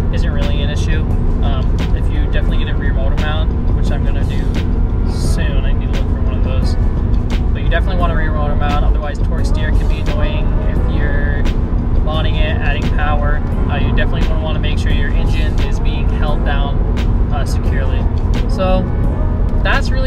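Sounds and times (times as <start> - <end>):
man talking: 0.0 - 6.8, 7.5 - 18.8, 19.6 - 20.0
car road and engine drone: 0.0 - 20.0.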